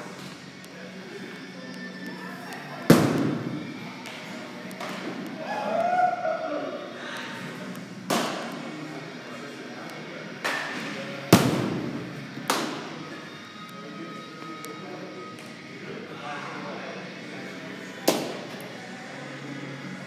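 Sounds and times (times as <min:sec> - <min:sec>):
baseball impacts with echo: 0:02.9 - 0:04.2, 0:08.0 - 0:08.7, 0:10.4 - 0:13.0, 0:18.0 - 0:18.6.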